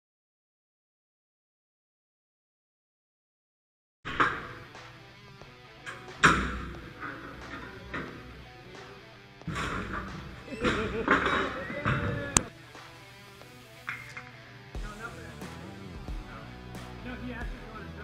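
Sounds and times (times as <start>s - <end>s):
background music: 4.1s - 18.0s
metal bar striking steel door: 5.9s - 8.2s.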